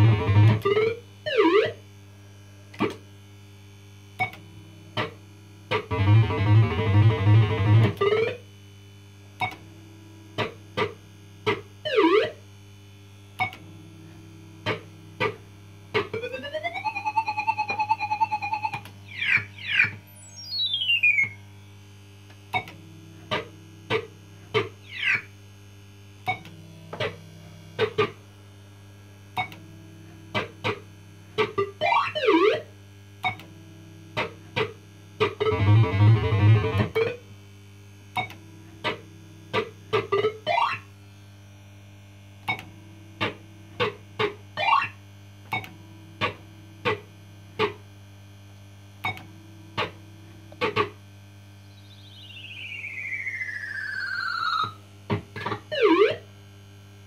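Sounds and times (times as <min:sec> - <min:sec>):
steady hum: 0:00.0 - 0:10.6, 0:51.4 - 0:57.0
fruit machine bleeps: 0:16.2 - 0:21.5, 0:51.7 - 0:54.8
rising pulsing tone: 0:51.8 - 0:54.8.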